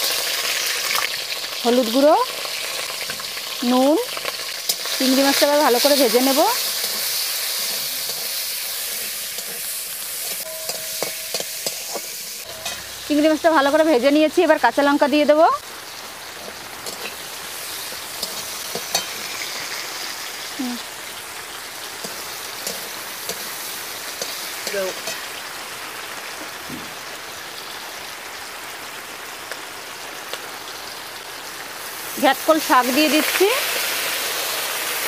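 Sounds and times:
prawns sizzling in hot oil: 0.0 - 35.0.

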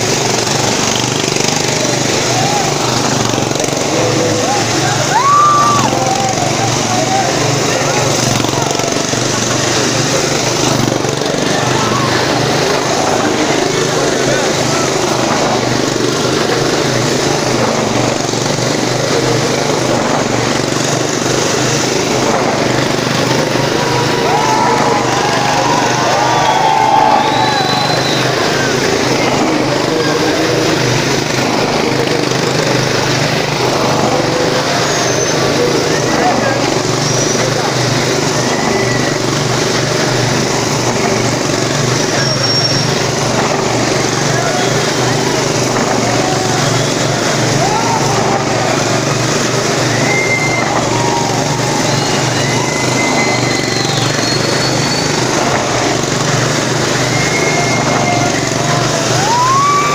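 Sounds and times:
motorcycle engine at high revs: 0.0 - 59.9.

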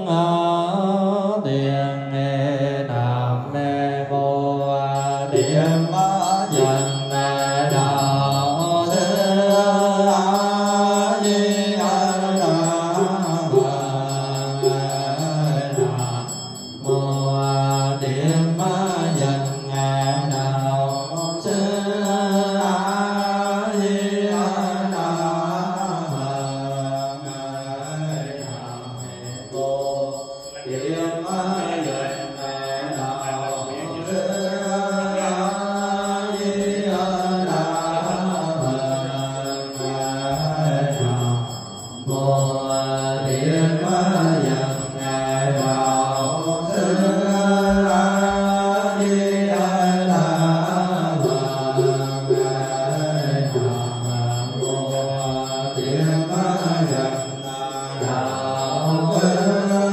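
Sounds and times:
melodic chanting: 0.0 - 59.9.

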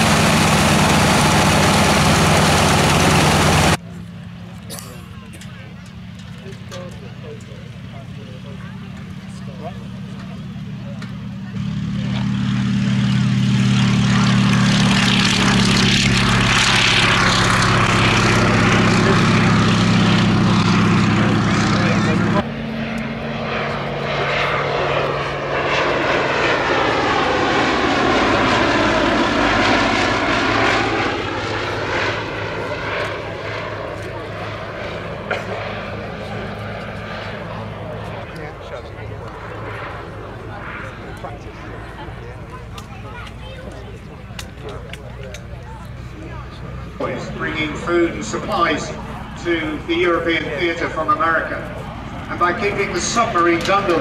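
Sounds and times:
biplane flying past: 0.0 - 54.0
radial aircraft engine at high power: 0.0 - 54.0.

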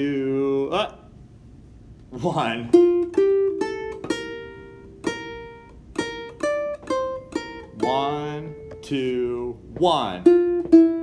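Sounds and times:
ukulele plucking notes: 2.2 - 11.0.

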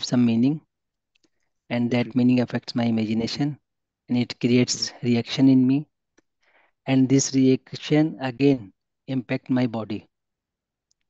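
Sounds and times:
man speaking: 1.7 - 5.9.

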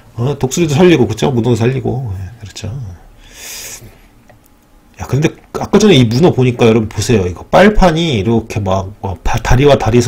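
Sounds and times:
person breathing: 3.2 - 4.2.

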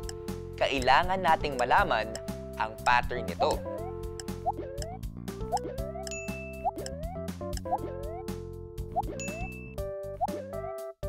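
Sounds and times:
light background music: 0.0 - 11.0
short high ding: 9.2 - 9.8.

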